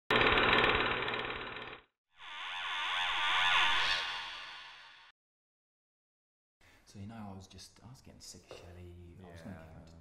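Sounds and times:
whoosh sweeping in pitch: 2.2s - 5.1s.

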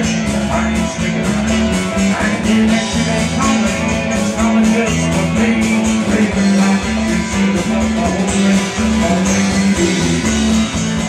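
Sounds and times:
country band playing: 0.0s - 11.0s.

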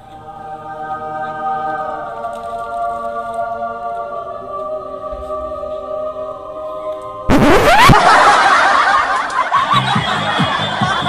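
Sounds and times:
high quick laughter: 7.3s - 11.0s.

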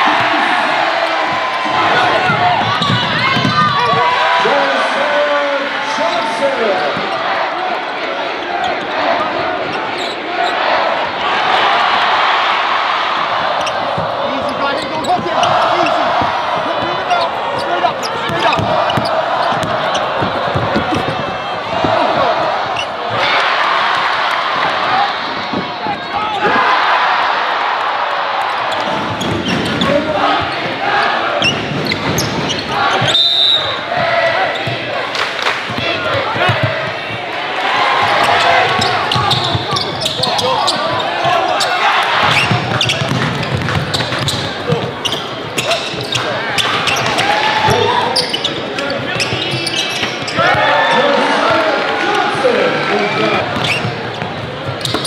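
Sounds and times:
crowd and player voices: 0.0s - 55.0s
basketball bouncing on hardwood: 2.2s - 3.9s, 18.3s - 22.2s, 35.7s - 37.3s, 42.2s - 45.2s.

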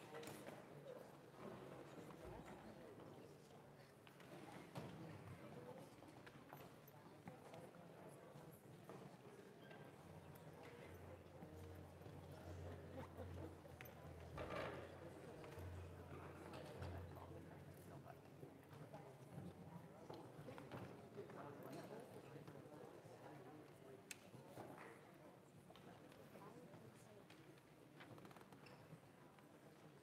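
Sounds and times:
murmur of audience voices: 0.0s - 28.0s.

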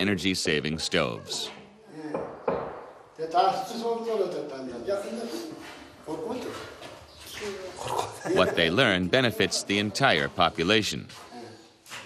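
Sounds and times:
people talking indistinctly: 0.0s - 11.8s.

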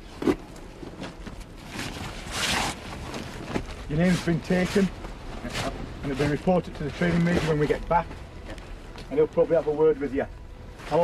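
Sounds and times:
fabric and plastic rustling: 0.0s - 9.1s.

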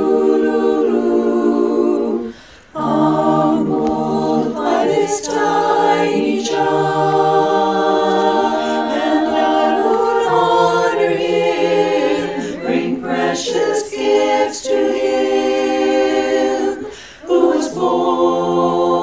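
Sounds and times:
women's chorus singing a cappella: 0.0s - 19.0s.

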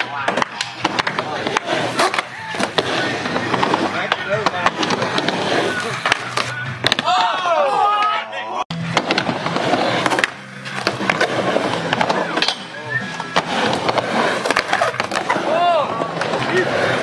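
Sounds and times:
skateboard rolling on wooden ramp: 0.0s - 7.3s, 8.8s - 17.0s
voices calling out: 1.2s - 8.7s
person shouting: 15.4s - 15.9s.

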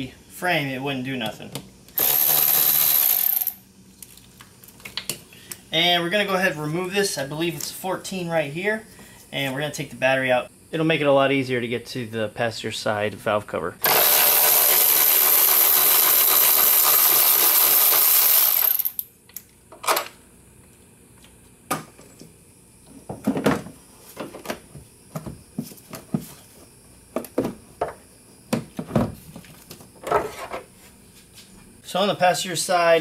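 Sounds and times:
cordless ratchet running: 2.0s - 3.6s, 13.8s - 19.0s.

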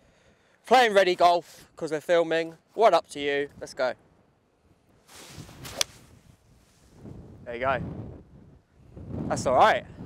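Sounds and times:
clubface hitting golf ball: 5.1s - 6.2s
golf club swing whoosh: 5.1s - 7.3s.

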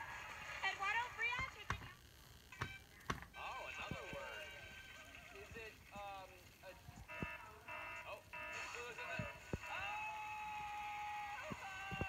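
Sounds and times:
held electronic tone: 7.0s - 8.9s.

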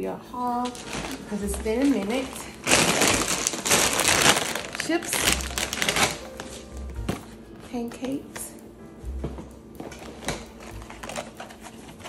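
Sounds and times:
canvas bag rustling: 0.4s - 7.4s.

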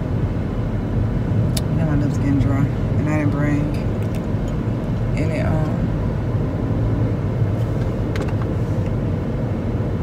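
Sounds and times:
car cabin low rumble: 0.0s - 10.0s
woman's voice: 1.6s - 3.9s, 5.1s - 5.9s.

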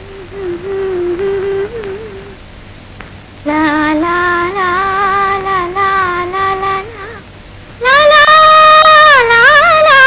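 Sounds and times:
woman singing: 0.0s - 2.4s, 3.4s - 7.2s, 7.8s - 10.0s.

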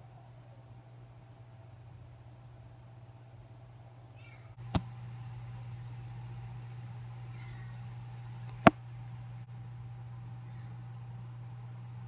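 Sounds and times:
low steady hum: 0.0s - 12.0s
faint high gliding calls: 4.1s - 4.6s, 7.2s - 7.9s.

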